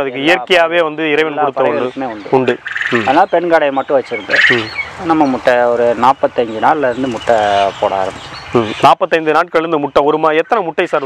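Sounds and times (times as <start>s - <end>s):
quail calling: 1.3s - 8.9s.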